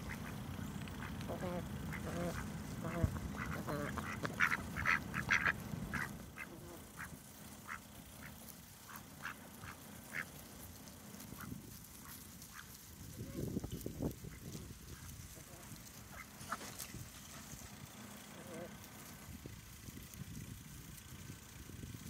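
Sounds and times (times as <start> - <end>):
ducks quacking softly: 0.0 - 10.4, 11.2 - 13.5, 14.2 - 17.6, 18.3 - 18.9.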